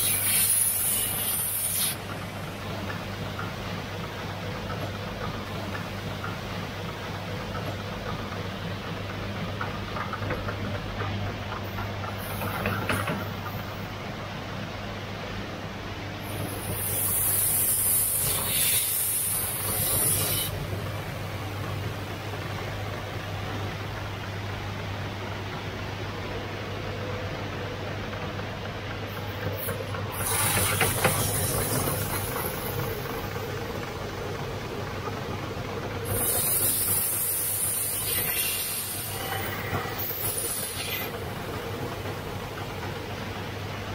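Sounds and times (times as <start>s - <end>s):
high hiss of glass on wheel: 0.0s - 2.0s, 16.6s - 20.5s, 30.1s - 31.9s, 36.0s - 39.2s.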